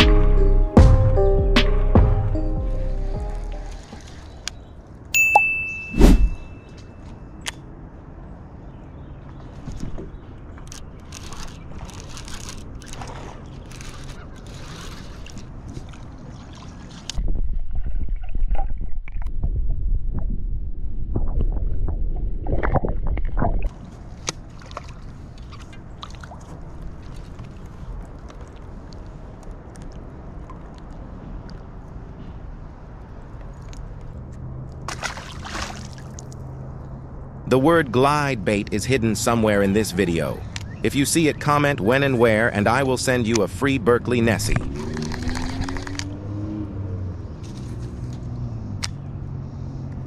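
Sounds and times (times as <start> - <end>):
water splashing and sloshing: 2.7 - 5.1, 9.2 - 19.8, 21.1 - 37.4, 44.4 - 46.5
bell-like ding: 5.2 - 7.0
short rush of noise: 5.8 - 6.6
low rumble on microphone: 17.2 - 23.7.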